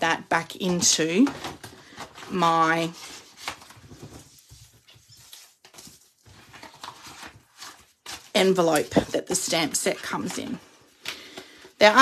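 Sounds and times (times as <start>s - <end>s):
plastic envelope rustling: 0.7s - 11.6s.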